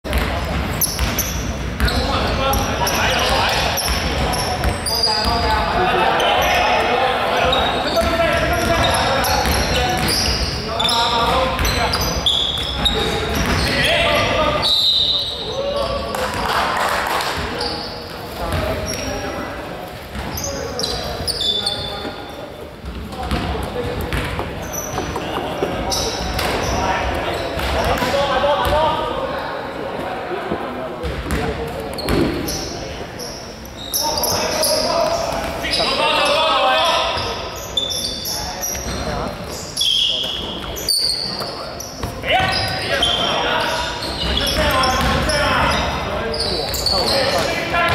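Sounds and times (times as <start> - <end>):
sneakers squeaking: 0.1 - 16.6, 17.2 - 29.2, 31.0 - 47.9.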